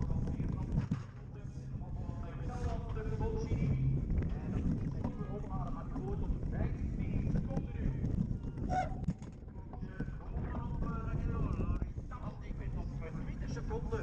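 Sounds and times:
background voices: 0.0 - 8.8, 9.4 - 14.0
wind buffeting microphone: 0.0 - 14.0.

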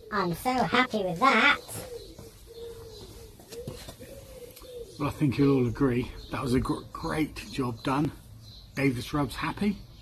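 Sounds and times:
pigeon cooing: 0.0 - 7.5.

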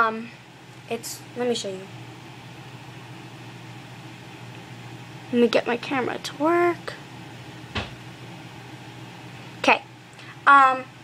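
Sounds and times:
steady low hum: 0.0 - 11.0
handling noise thump: 7.7 - 8.1.

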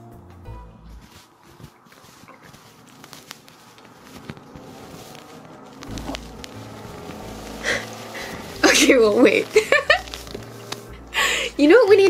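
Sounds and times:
low handling rumble: 0.6 - 12.0
cotton candy squished by hands: 1.2 - 12.0.

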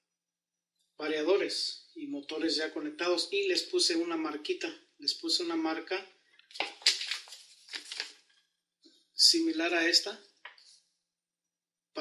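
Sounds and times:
paper rustling and crackling: 6.5 - 8.4.

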